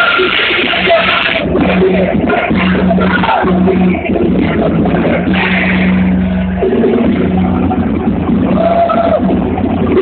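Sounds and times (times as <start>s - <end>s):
drums: 0.0s - 10.0s
electric guitars: 0.0s - 10.0s
person singing: 0.0s - 10.0s.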